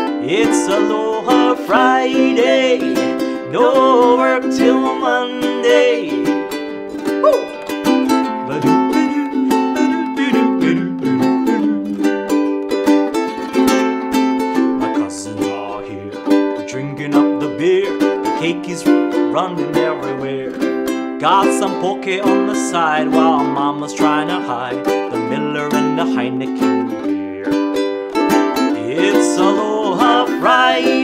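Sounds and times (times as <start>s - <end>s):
ukulele strumming chords: 0.0s - 31.0s.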